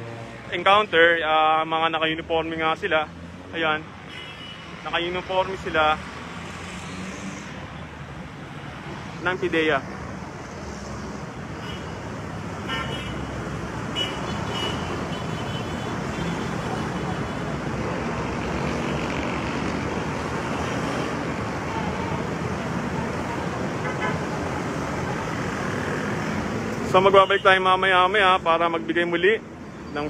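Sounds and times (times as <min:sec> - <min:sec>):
street traffic noise: 0:00.0 - 0:30.0.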